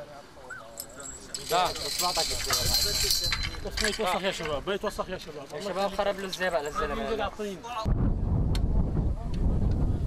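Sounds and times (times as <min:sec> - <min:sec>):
high steady hiss or jingle: 0:00.0 - 0:06.8
men talking: 0:00.0 - 0:07.9.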